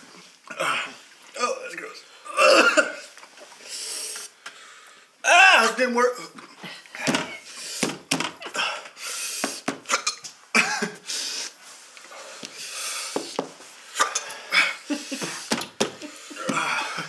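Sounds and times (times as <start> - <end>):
men coughing: 2.3 - 3.1, 9.9 - 11.0, 16.2 - 17.0.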